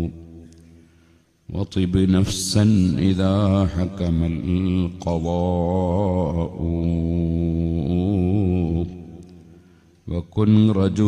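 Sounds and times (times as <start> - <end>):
man chanting poetry: 0.0 - 0.4, 1.5 - 11.0.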